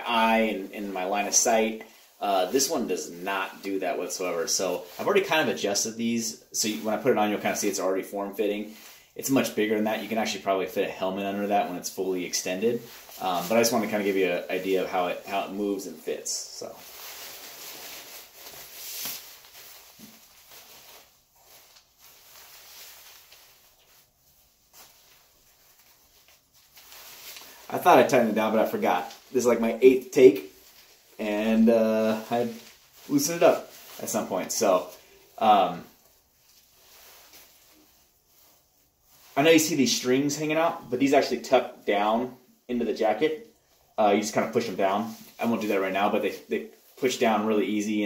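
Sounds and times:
jacket fabric rustling: 0:00.0 - 0:48.0.

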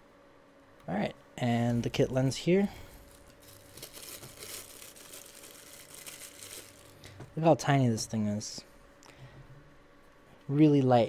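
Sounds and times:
paper wrapping crinkling: 0:03.0 - 0:07.1.

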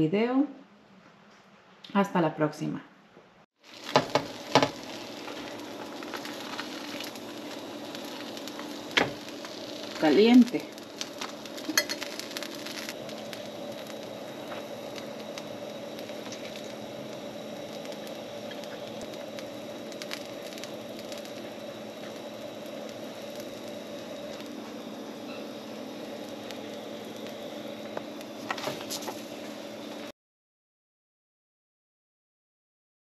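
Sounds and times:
food crackling on hot griddle: 0:03.6 - 0:30.1
low hum and hiss: 0:03.7 - 0:30.0.

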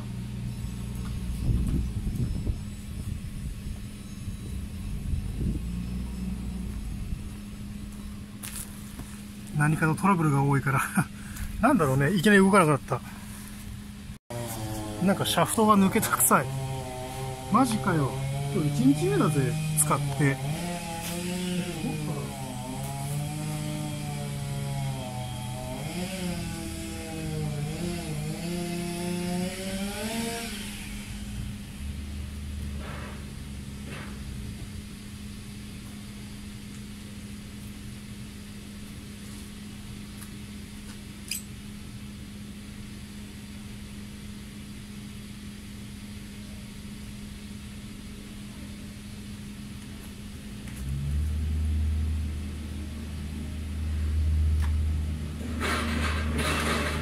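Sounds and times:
two-stroke pole saw engine running: 0:14.3 - 0:34.5, 0:55.3 - 0:57.0.

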